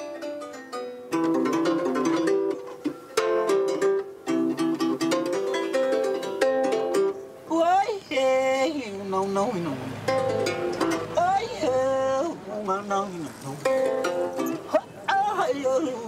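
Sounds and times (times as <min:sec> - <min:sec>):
plucked string instrument melody: 0:00.0 - 0:16.0.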